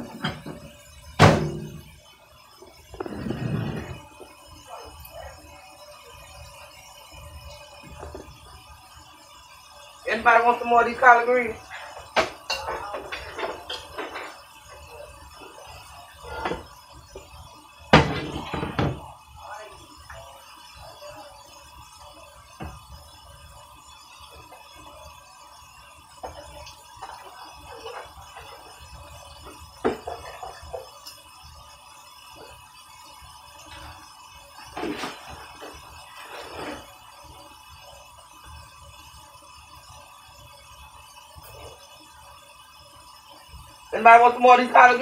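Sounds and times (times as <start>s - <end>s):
pots and pans clattering: 0.0s - 2.0s, 2.8s - 4.3s, 11.6s - 17.3s, 17.9s - 19.2s, 26.2s - 31.3s, 33.6s - 37.1s.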